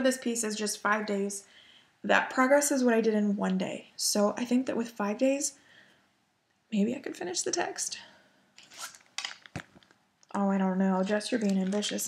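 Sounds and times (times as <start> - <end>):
plastic and paper rustling: 8.6 - 10.0, 11.0 - 12.0.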